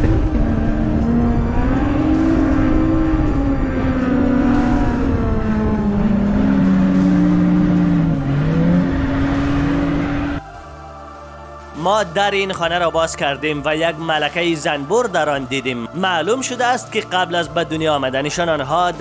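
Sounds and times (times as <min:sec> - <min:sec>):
engine labouring and revving: 0:00.0 - 0:11.4.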